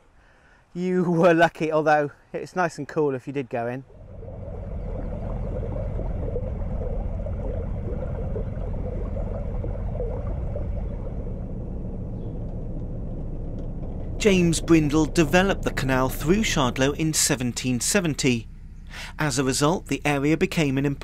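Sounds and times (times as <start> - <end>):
boat engine running: 3.9 - 21.0.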